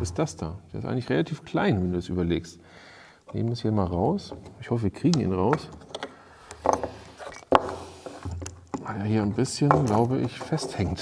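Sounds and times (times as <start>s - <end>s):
plastic rattles: 4.2s - 11.0s.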